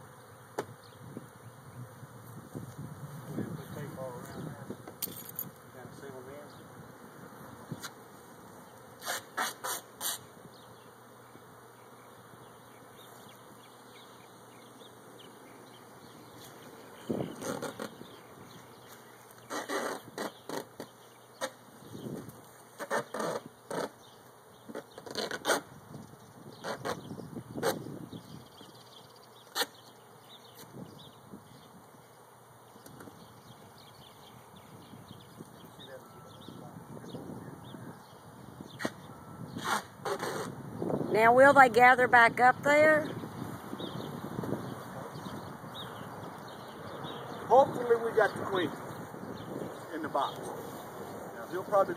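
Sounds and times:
bee swarm buzzing: 0:00.0 - 0:51.9.

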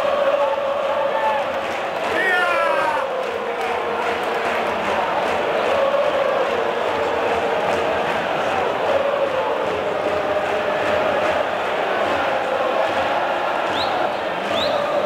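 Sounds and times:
football crowd chanting: 0:00.0 - 0:15.0.

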